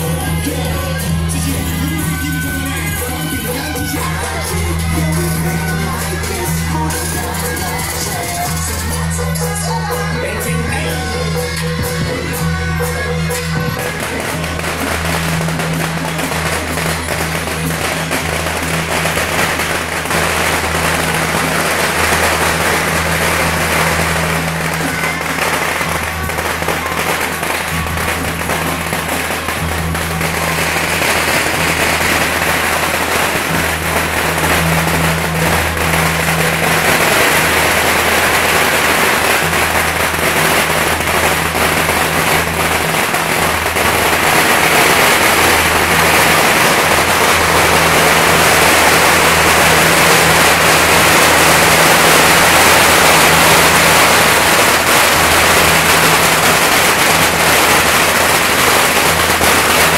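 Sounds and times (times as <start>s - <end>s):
firecrackers crackling: 0.0s - 59.9s
music with steady bass line: 0.0s - 59.9s.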